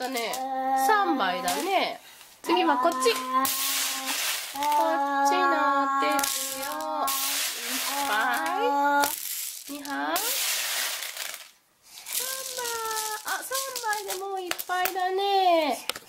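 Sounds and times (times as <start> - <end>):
plastic beads rattling and pouring: 2.9 - 15.0.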